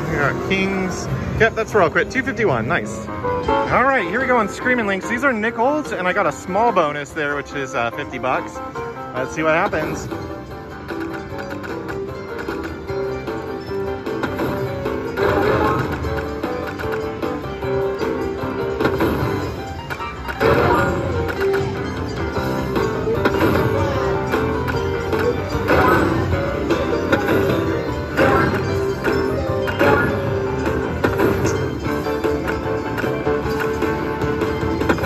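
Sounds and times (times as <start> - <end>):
slot machine looping melody: 0.0 - 35.0.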